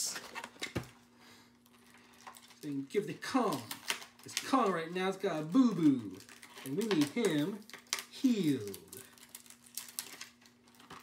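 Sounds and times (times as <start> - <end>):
faint steady hum: 0.0 - 11.0
packaging rustling: 1.6 - 11.0.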